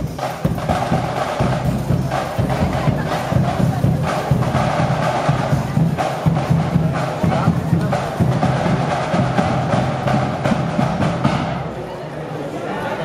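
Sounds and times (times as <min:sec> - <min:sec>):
brass instruments: 0:00.0 - 0:11.8
drum beats: 0:00.0 - 0:11.9.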